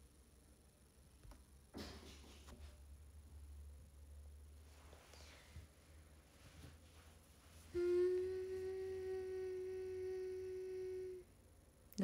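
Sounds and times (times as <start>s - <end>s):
woman humming: 7.7s - 11.4s.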